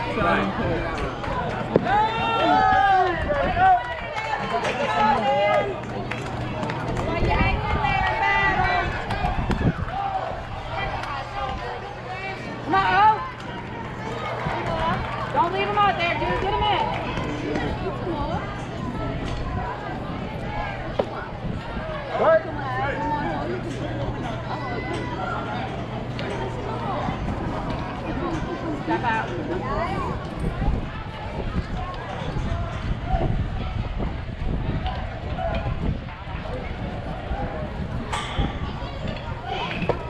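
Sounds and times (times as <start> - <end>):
voices shouting and cheering: 0.0 - 40.0.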